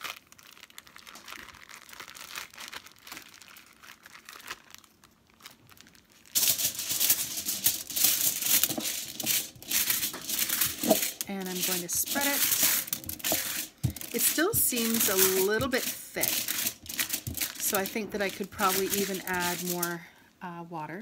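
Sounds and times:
plastic bag crinkling: 0.0s - 20.0s.

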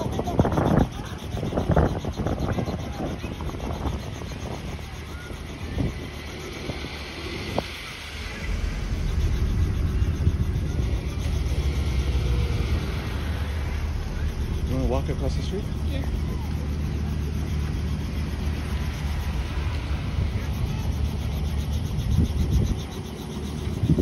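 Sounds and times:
helicopter engine and rotor: 0.0s - 24.0s.

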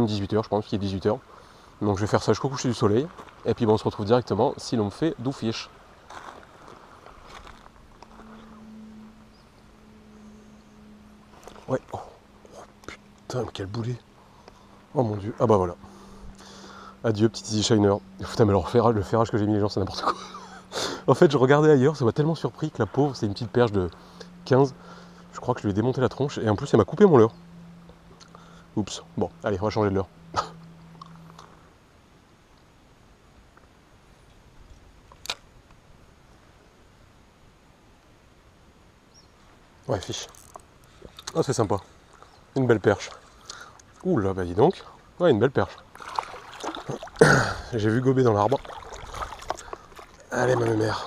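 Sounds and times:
man's hiccup-like vocal sound: 30.3s - 30.6s.

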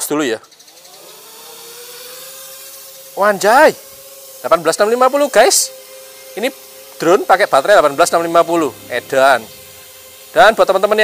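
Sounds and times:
drone motors whining: 0.4s - 11.0s
steady hiss: 2.0s - 11.0s.

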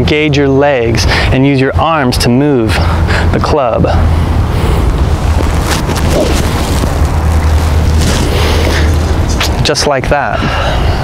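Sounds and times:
wind buffeting microphone: 2.1s - 11.0s.

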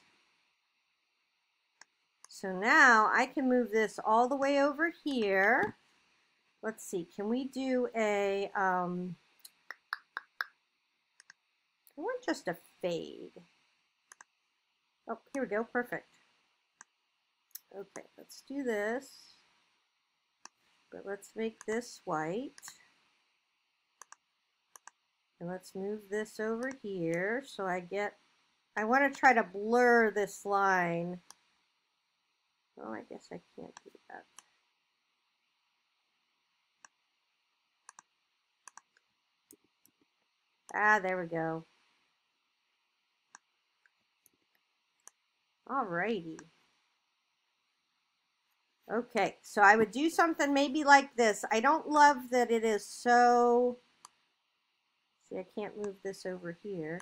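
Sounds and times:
computer mouse clicking: 11.2s - 11.4s, 14.1s - 14.4s, 24.0s - 25.0s, 37.8s - 40.1s, 43.3s - 45.2s.

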